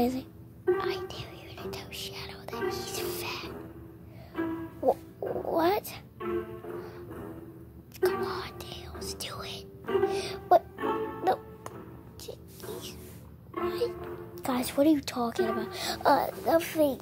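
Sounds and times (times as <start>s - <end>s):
soft background music: 0.0s - 17.0s.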